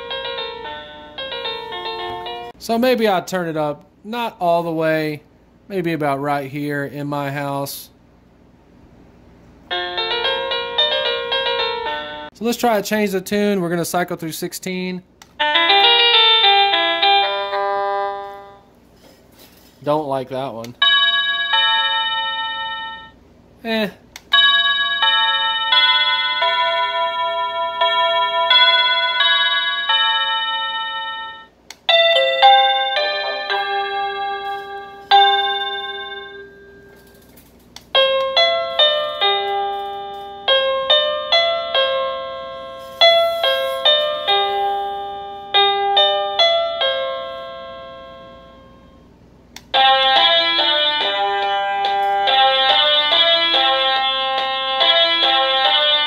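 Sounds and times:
electronic doorbell chime melodies: 0.0s - 2.6s, 9.7s - 12.3s, 15.4s - 18.7s, 20.8s - 23.2s, 24.3s - 37.2s, 38.0s - 49.1s, 49.7s - 56.0s.

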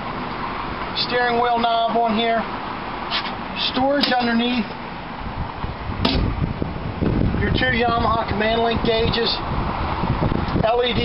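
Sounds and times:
wind rumble on microphone: 5.0s - 11.0s.

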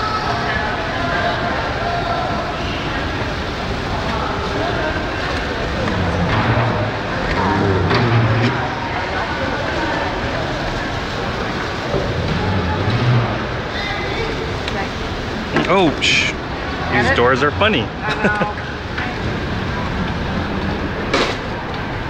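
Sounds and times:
indistinct voices: 0.0s - 22.0s.

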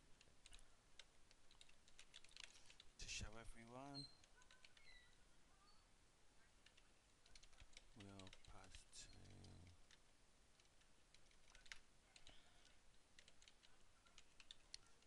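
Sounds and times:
typing on computer keyboard: 0.2s - 2.9s, 4.1s - 5.1s, 6.6s - 10.0s, 10.6s - 15.0s.

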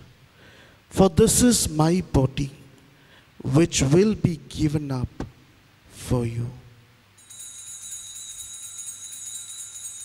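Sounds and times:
altar bells jingling: 7.2s - 10.0s.

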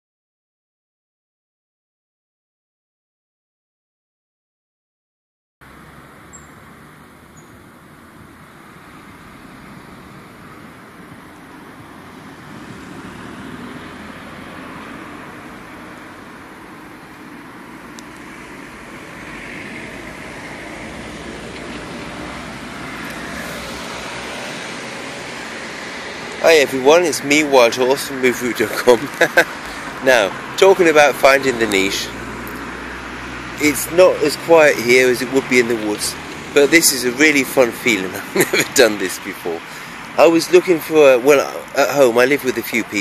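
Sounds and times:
hum of passing cars: 5.6s - 43.0s.

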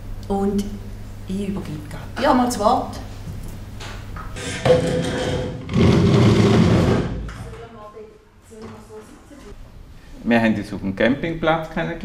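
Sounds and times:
desk scraping across floor: 4.4s - 7.4s.

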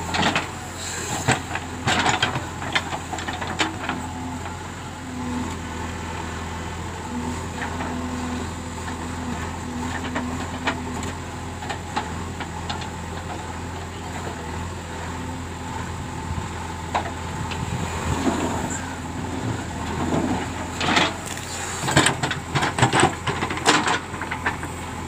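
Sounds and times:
diesel engine running: 0.0s - 25.0s.

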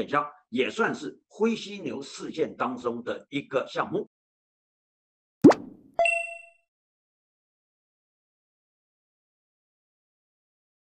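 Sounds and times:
upward sweeping pop: 5.4s - 5.9s.

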